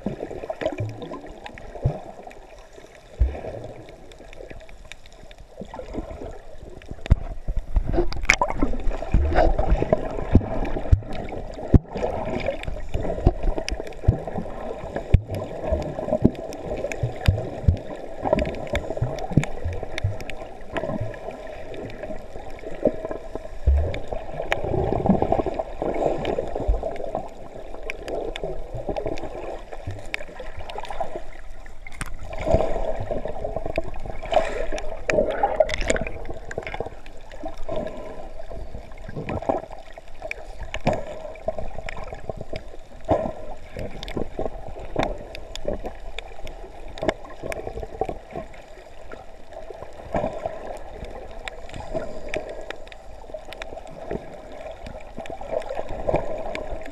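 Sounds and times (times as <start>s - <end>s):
muffled underwater sloshing: 0.0s - 56.9s
sharp clicks and crackles: 0.6s - 32.5s, 33.5s - 37.9s, 39.1s - 56.9s.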